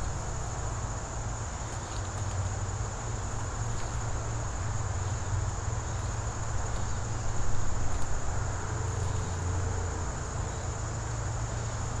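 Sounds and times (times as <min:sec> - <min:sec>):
insects trilling: 0:02.6 - 0:12.0.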